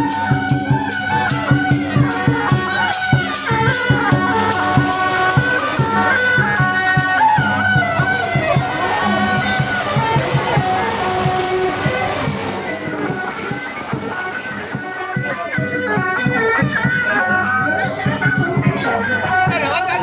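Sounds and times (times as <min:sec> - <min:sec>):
gong strokes: 0:00.0 - 0:19.6
hand cymbal strokes: 0:00.0 - 0:20.0
reed horns playing melody: 0:00.0 - 0:20.0.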